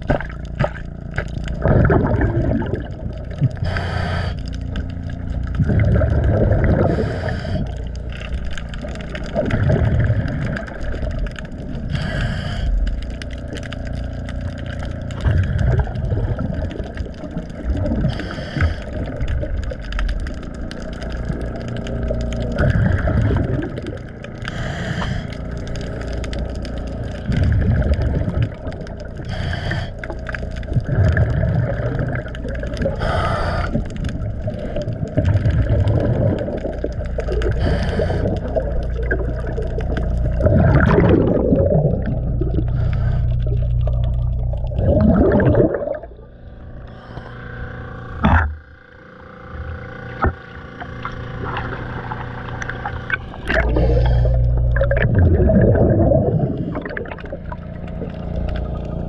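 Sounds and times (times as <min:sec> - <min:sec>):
exhale bubbling rumble: 0:00.0 - 0:59.0
regulator inhale hiss: 0:03.6 - 0:04.6, 0:06.8 - 0:08.0, 0:11.8 - 0:13.0, 0:18.0 - 0:19.2, 0:24.4 - 0:25.8, 0:29.2 - 0:30.4, 0:32.8 - 0:34.0, 0:37.4 - 0:38.6, 0:42.6 - 0:43.6, 0:46.8 - 0:47.7, 0:53.6 - 0:54.6.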